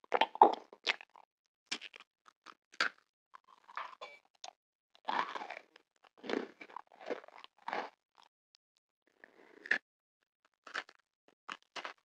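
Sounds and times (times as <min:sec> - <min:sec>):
biting into candy: 0:00.0 - 0:03.8, 0:05.0 - 0:08.3, 0:10.6 - 0:12.0
chewing: 0:00.0 - 0:03.8, 0:04.4 - 0:08.3, 0:10.6 - 0:12.0.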